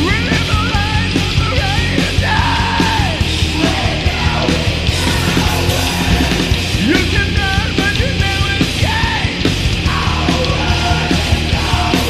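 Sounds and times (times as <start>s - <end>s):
distorted electric guitars: 0.0s - 12.0s
drums keeping a beat: 0.0s - 12.0s.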